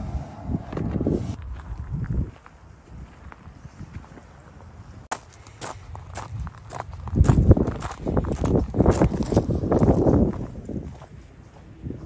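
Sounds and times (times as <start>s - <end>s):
footsteps crunching on gravel: 0.6s - 11.7s.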